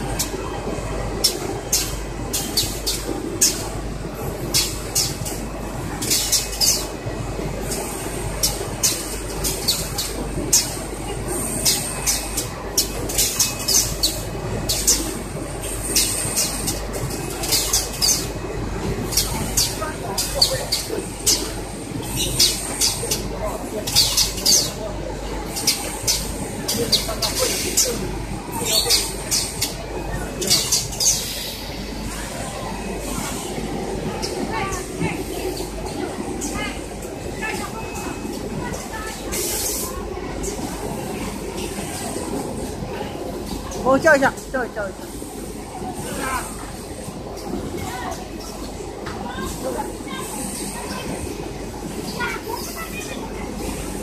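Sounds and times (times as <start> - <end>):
packaging machine rumble and clatter: 0.0 - 44.2
pneumatic air hisses: 30.6 - 31.9.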